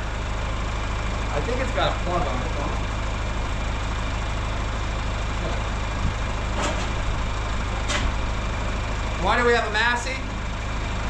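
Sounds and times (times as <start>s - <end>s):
tractor engine idling: 0.0s - 11.0s.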